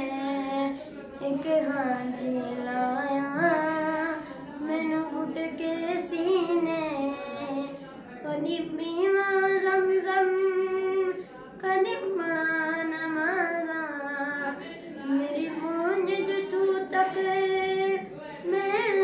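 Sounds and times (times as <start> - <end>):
boy singing solo: 0.0 - 19.0.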